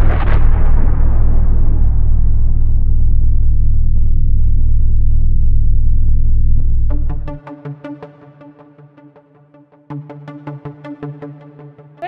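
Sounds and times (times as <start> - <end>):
deep bass rumble: 0.0 - 7.4.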